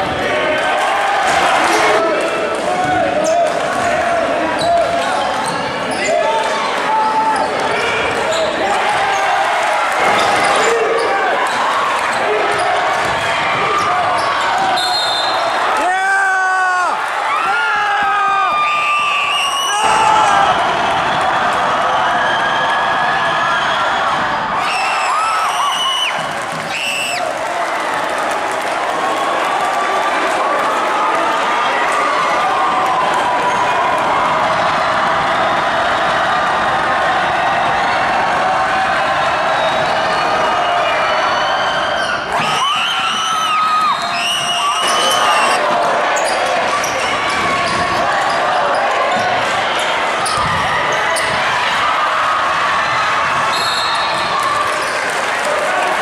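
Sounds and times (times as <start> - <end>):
crowd cheering and shouting: 0.0 - 56.0
shrill whistle blast: 14.8 - 15.5, 18.6 - 20.0, 24.6 - 27.2, 40.8 - 45.6, 53.5 - 54.4.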